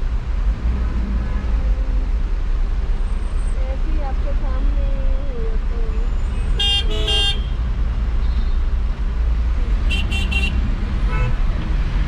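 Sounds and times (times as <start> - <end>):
city traffic: 0.0 - 12.0
taxi engine rumble: 0.0 - 12.0.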